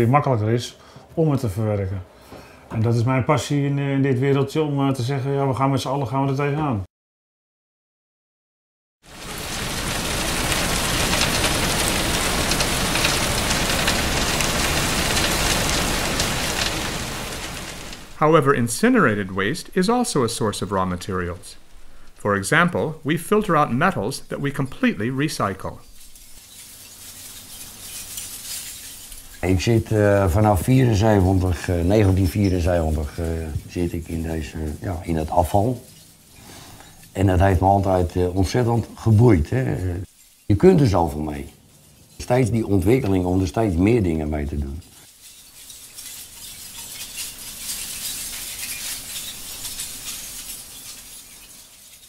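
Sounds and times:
faint hiss: 9.1s - 52.0s
scrap metal clinking onto heap: 9.2s - 18.0s, 25.4s - 38.2s, 40.0s - 52.0s.

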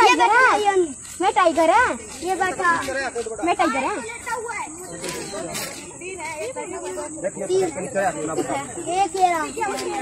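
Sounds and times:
people talking: 0.0s - 10.0s
steady high-pitched hiss: 0.0s - 10.0s.

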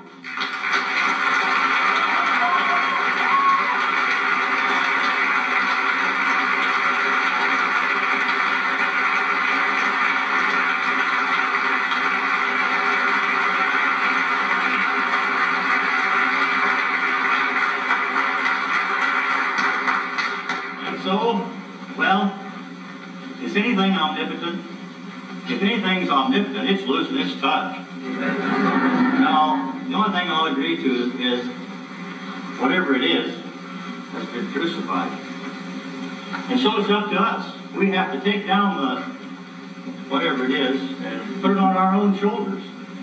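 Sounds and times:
audience applauding: 0.0s - 22.3s, 28.0s - 37.1s.

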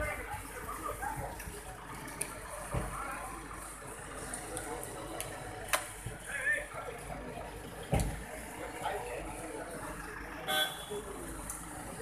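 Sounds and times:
crowd chatter: 0.0s - 12.0s
vehicle horn toot: 10.5s - 11.0s.

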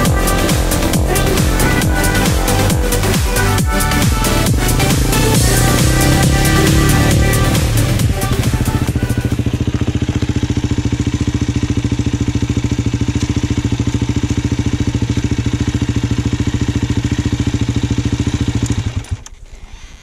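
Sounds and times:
dirt bike engine idling: 0.0s - 19.6s.

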